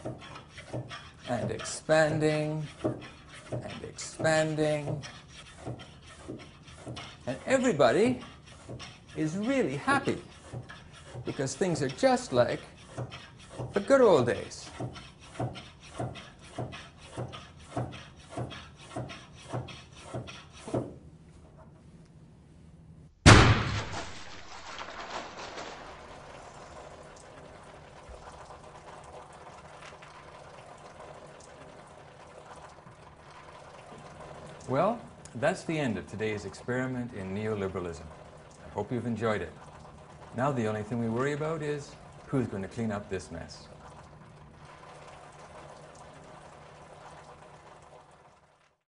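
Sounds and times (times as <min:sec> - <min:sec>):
water splashing down: 0:23.3 - 0:30.4
water drips: 0:24.6 - 0:35.4, 0:36.9 - 0:48.7
water trickling: 0:25.2 - 0:48.8.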